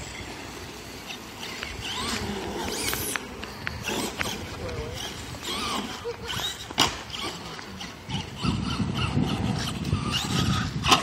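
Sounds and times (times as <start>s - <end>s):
rc truck rumbling on asphalt: 0.0s - 11.0s.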